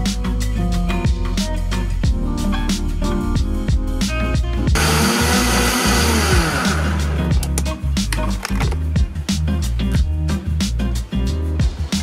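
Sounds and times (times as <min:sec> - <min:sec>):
background music: 0:00.0 - 0:12.0
blender motor whirring: 0:04.8 - 0:07.4.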